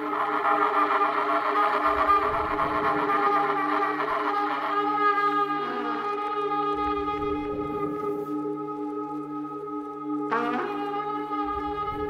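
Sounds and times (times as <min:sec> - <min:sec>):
sustained saxophone and trumpet tones: 0:00.0 - 0:12.0
low rumbling swell: 0:01.8 - 0:04.2.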